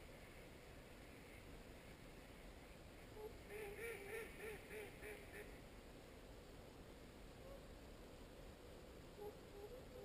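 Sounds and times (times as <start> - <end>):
swans honking: 3.2 - 5.6.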